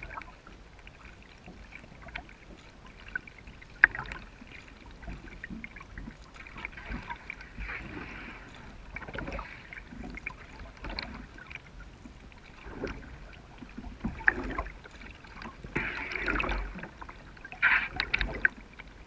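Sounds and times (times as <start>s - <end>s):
paddle strokes through water: 0.0s - 19.0s.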